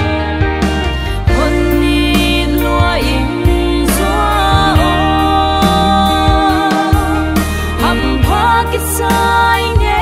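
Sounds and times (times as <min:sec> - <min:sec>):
backing band with bass and drums: 0:00.0 - 0:10.0
woman singing gospel song: 0:01.2 - 0:10.0.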